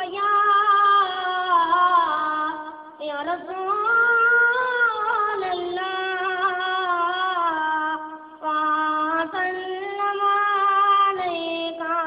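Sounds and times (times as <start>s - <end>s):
high voice singing devotional song: 0.0s - 12.0s.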